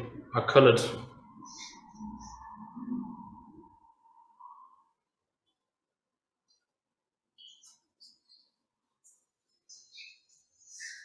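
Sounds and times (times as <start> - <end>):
high-pitched wavering tone: 1.2 - 4.8.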